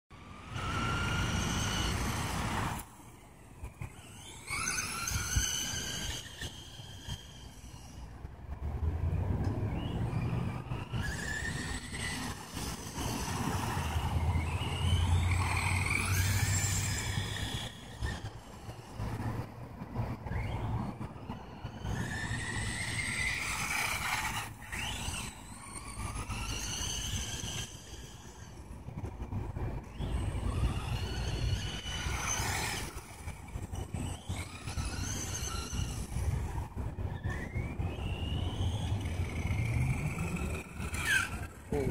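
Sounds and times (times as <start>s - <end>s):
rc truck electric motor whining: 0.1s - 41.9s.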